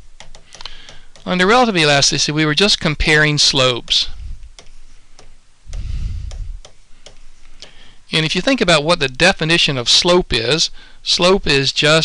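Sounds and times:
stylus clicking on tablet: 0:00.2 - 0:01.4, 0:03.9 - 0:07.8
low rumble: 0:05.7 - 0:06.6.

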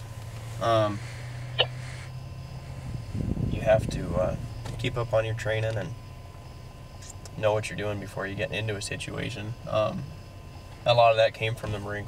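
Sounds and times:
car interior drone: 0:00.0 - 0:12.0.

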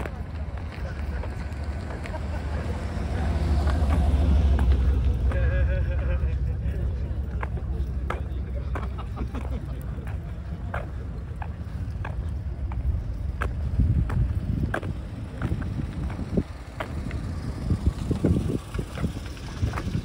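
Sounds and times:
car engine rumble driving past: 0:00.0 - 0:20.0.

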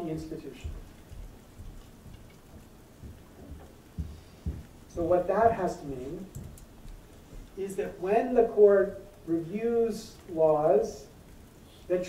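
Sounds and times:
faint room noise: 0:00.0 - 0:12.0
soft low thumps: 0:00.6 - 0:07.6.

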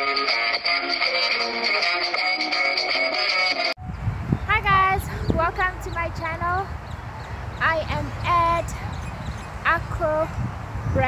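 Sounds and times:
wind rumbling on microphone: 0:03.8 - 0:11.0
woman talking: 0:04.5 - 0:06.7, 0:07.6 - 0:08.9, 0:09.6 - 0:10.3.

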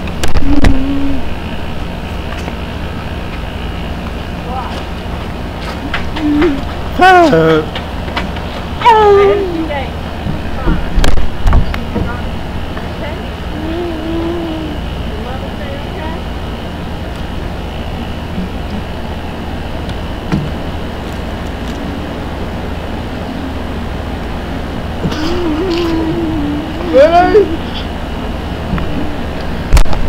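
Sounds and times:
low rumbling background noise: 0:00.0 - 0:30.0
faint voice: 0:13.5 - 0:15.3, 0:25.0 - 0:27.9.

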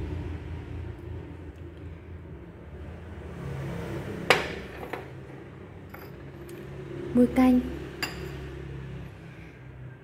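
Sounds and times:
porcelain dishes clinking: 0:04.3 - 0:06.7, 0:08.0 - 0:08.5.

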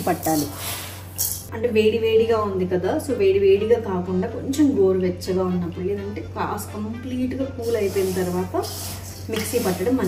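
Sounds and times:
woman speaking: 0:00.0 - 0:00.6, 0:01.5 - 0:10.0.

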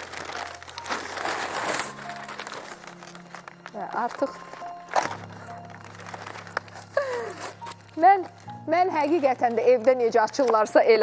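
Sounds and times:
paper crinkling and rustling: 0:00.0 - 0:11.0
sharp paper crackles: 0:00.0 - 0:11.0
soft background music: 0:00.0 - 0:11.0.

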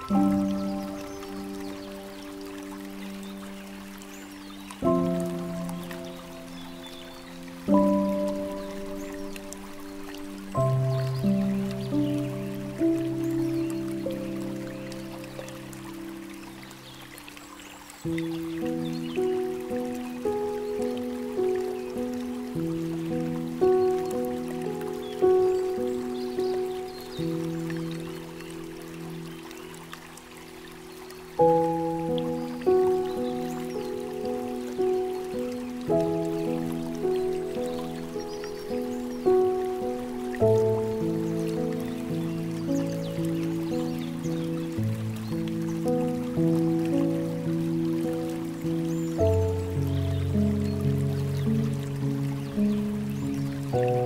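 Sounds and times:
gentle solo piano: 0:00.0 - 0:30.6, 0:31.2 - 0:54.0
water trickling: 0:00.0 - 0:54.0.

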